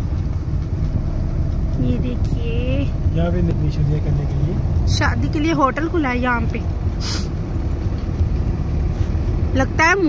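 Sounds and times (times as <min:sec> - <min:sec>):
car engine and tyre noise: 0:00.0 - 0:10.0
short hiss: 0:07.0 - 0:07.4.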